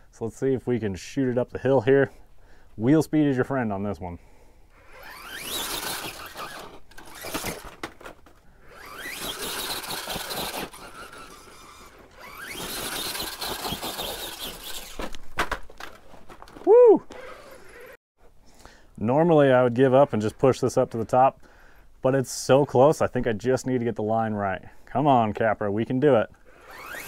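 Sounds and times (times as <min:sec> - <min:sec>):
electric motor whining: 0:04.8 - 0:07.8, 0:08.6 - 0:15.0, 0:26.5 - 0:27.0
tires spinning on rock: 0:04.8 - 0:07.8, 0:08.6 - 0:15.2, 0:26.6 - 0:27.0
short loud cry: 0:16.6 - 0:17.2.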